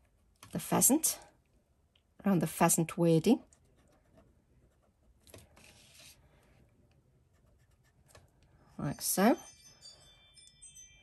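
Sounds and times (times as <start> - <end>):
pencil scratching on card: 7.3 - 8.2.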